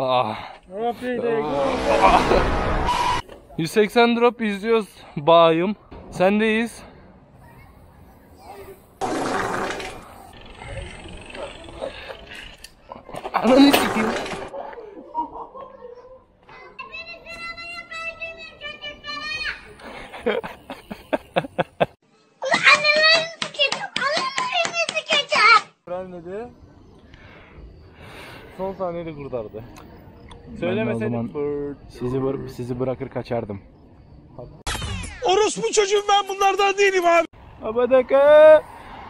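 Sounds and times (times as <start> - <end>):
child talking loudly: 16.5 - 19.7, 22.4 - 25.8.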